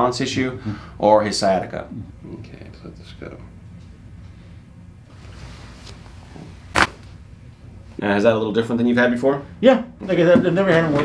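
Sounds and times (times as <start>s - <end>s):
faint room noise: 0.0s - 11.0s
neck joint cracking: 6.7s - 7.1s.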